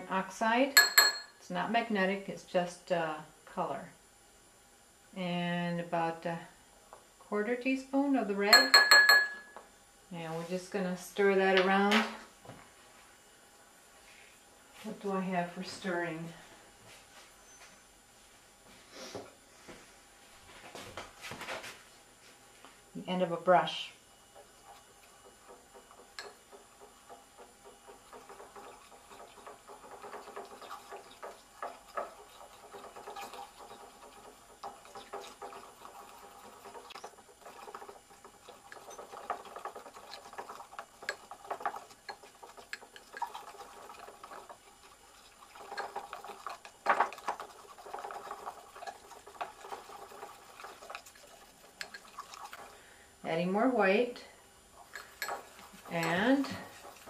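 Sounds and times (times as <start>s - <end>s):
brush handle scraping glass bowl: 27.9s - 52.7s, 54.9s - 57.0s.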